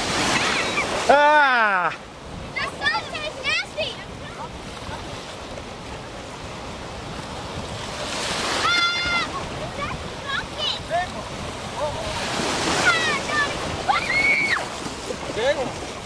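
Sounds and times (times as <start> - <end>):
ocean surf washing: 0.0 - 16.0.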